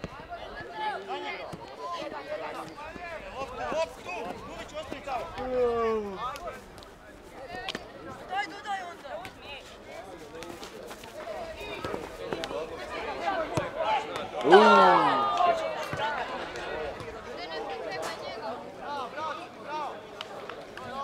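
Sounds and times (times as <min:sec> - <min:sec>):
people shouting outdoors: 0:13.0 - 0:16.2.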